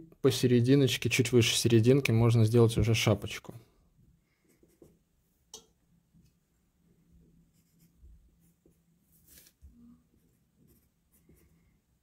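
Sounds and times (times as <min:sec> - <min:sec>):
pencil scratching on paper: 0:04.5 - 0:05.0, 0:07.5 - 0:11.7.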